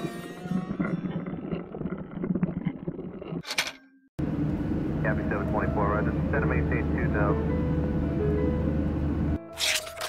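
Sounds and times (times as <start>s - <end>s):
low jet engine rumble: 4.2s - 8.0s.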